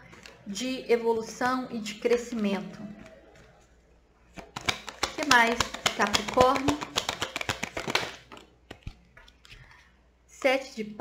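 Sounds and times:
faint card handling noise: 2.1s - 10.0s
cards being shuffled: 4.3s - 9.7s
sharp card clicks: 4.4s - 8.9s.

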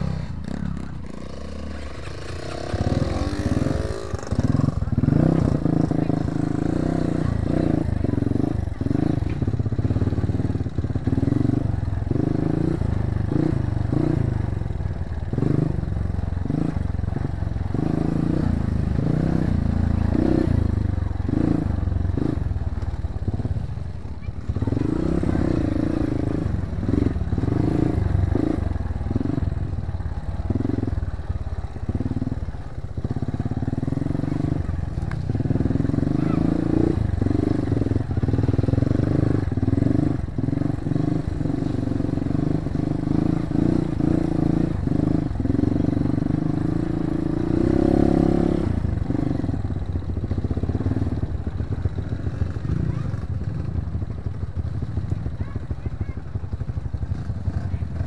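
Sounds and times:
dirt bike engine revving: 0.0s - 14.5s, 15.2s - 53.8s.

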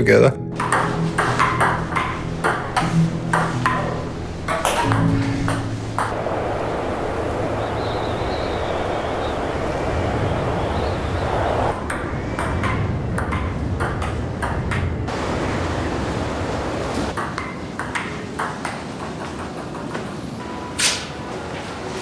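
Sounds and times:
blizzard wind blowing: 0.6s - 22.0s
faint wind whistle: 6.1s - 13.6s.

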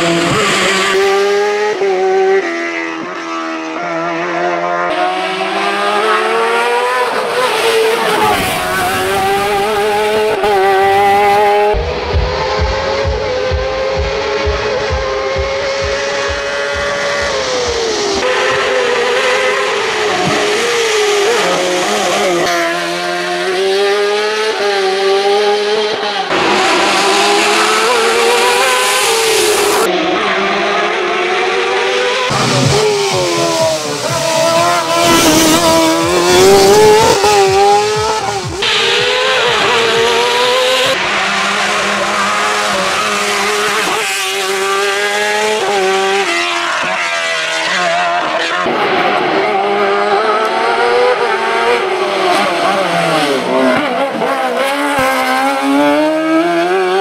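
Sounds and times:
high-revving race car engine: 0.0s - 57.0s.

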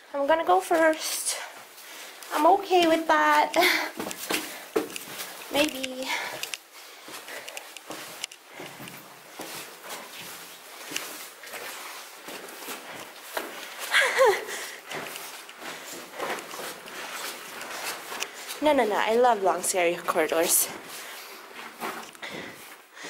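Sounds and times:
footsteps on concrete stairs: 0.6s - 23.0s.

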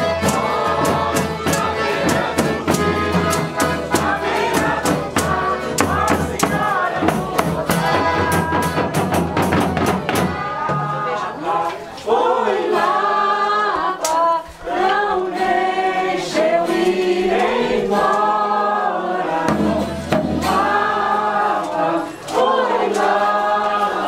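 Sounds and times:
group singing in harmony: 0.0s - 24.0s.

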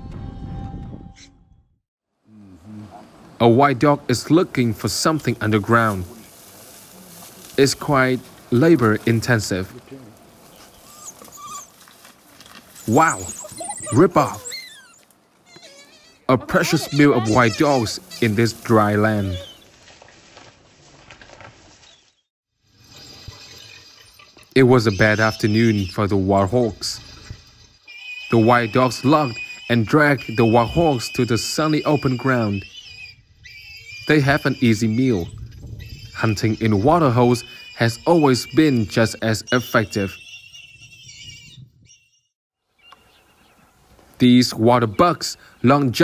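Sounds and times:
wild dogs tearing at carcass: 10.2s - 16.0s.

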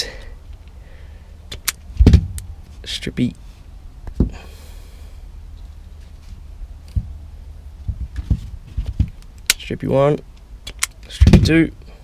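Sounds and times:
wire stripper handles thumping shut: 10.7s - 11.6s.

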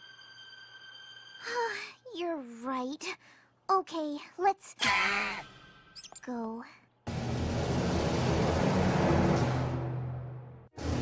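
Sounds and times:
loud noisy rumble: 7.1s - 11.0s.

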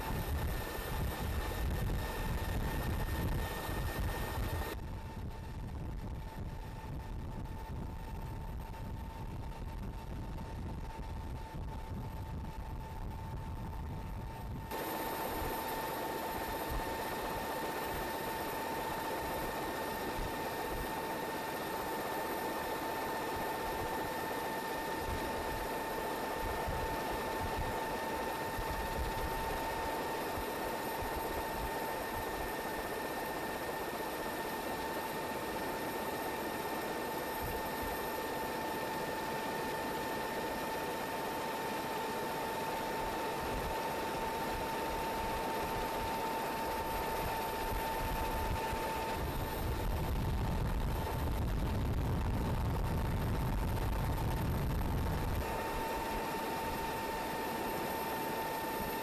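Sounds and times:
aircraft engine and airflow: 0.0s - 59.0s
constant high whine: 0.0s - 59.0s.

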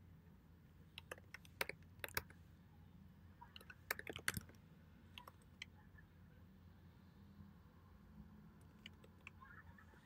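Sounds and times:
faint low hum: 0.0s - 10.0s
computer keyboard typing: 1.0s - 2.4s, 3.5s - 5.7s, 8.6s - 9.4s.

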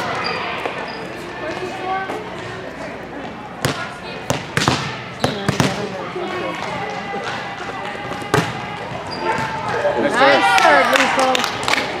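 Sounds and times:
murmur of voices: 0.0s - 12.0s
volleyballs smacking: 3.6s - 5.9s.

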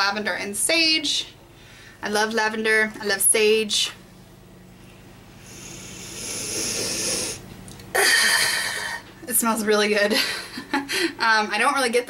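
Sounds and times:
deep sniff through nose: 5.4s - 7.4s.

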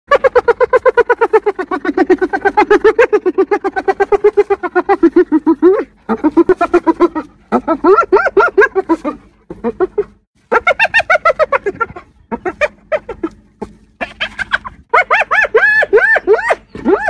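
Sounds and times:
hyena giggling: 0.1s - 17.0s.

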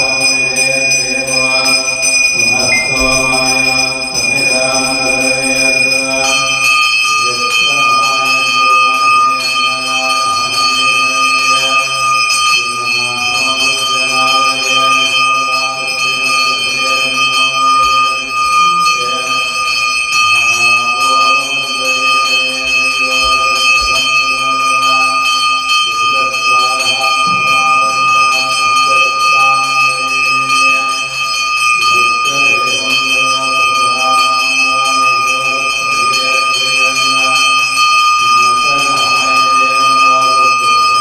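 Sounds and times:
brass hand bell ringing: 0.0s - 41.0s.

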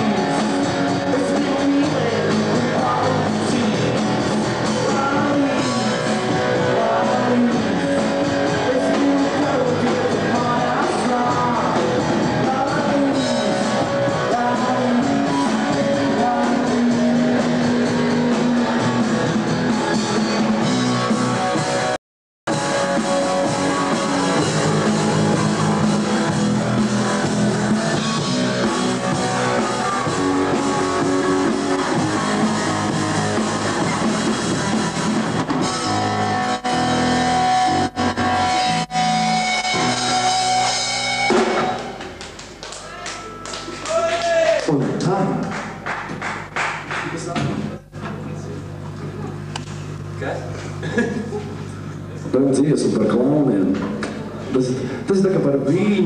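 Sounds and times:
distorted electric guitar: 0.0s - 43.9s
drum kit: 0.0s - 48.0s
bass guitar: 0.0s - 56.0s.

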